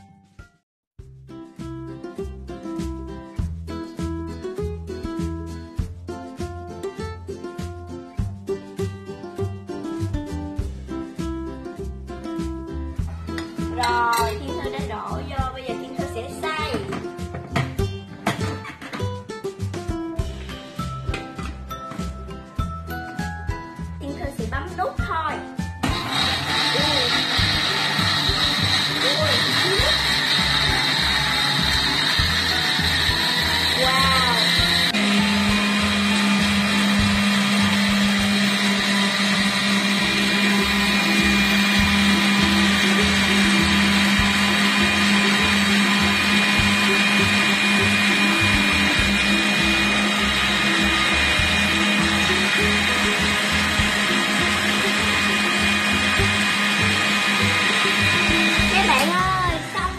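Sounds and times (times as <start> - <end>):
blender running: 25.7 - 59.9.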